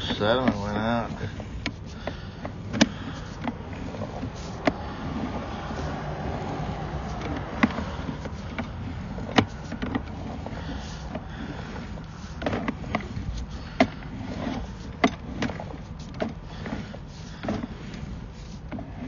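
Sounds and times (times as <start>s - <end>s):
steady low rumble: 0.0s - 18.5s.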